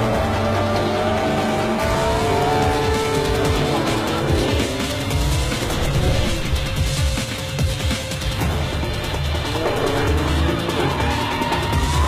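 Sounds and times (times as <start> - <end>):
background music: 0.0 - 12.0
car engine revving: 0.0 - 12.0.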